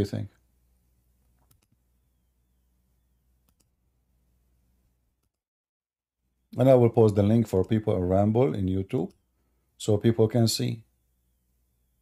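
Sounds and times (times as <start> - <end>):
computer mouse clicks: 1.4 - 1.8, 3.4 - 3.8.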